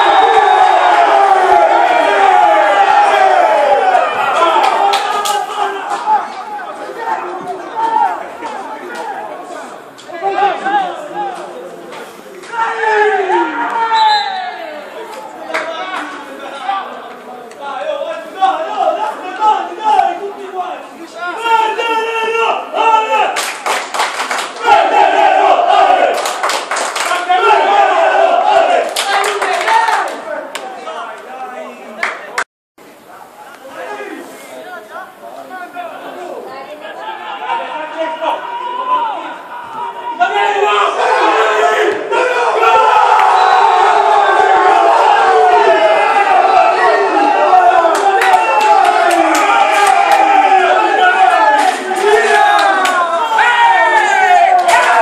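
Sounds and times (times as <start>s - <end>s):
crowd chatter and calling out: 0.0s - 23.6s, 27.1s - 55.0s.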